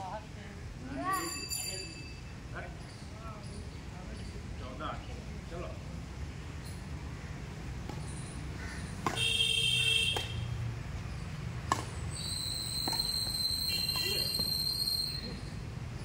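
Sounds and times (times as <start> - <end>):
rackets hitting shuttlecock: 7.8 - 10.5, 11.1 - 14.6
high whistle-like tones: 12.1 - 15.6.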